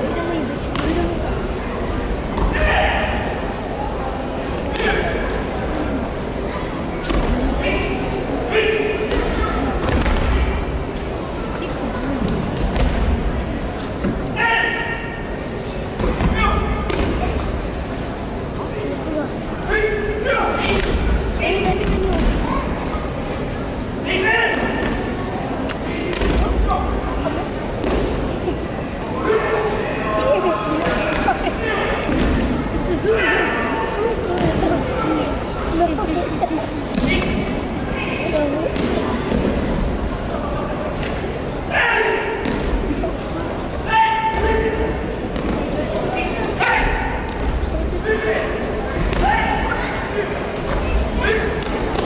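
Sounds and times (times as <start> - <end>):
many voices echoing: 0.0 - 52.0.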